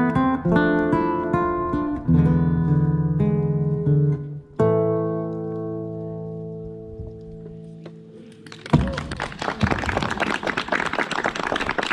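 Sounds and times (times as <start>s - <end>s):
audience applauding: 8.2s - 11.9s.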